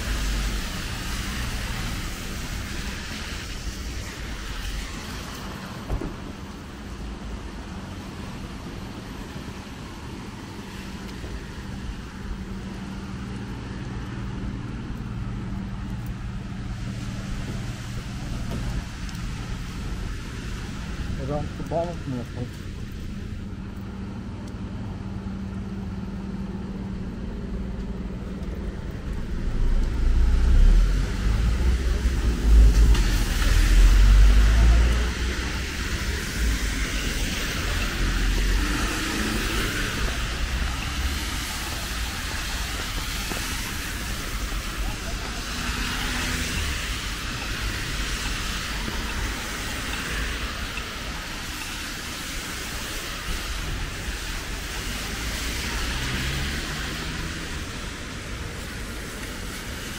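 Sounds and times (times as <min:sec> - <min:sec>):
rain falling: 0:00.0 - 0:59.9
road traffic: 0:00.0 - 0:59.9
tyres hissing on wet asphalt: 0:00.0 - 0:59.9
deep rumble: 0:12.3 - 0:45.4.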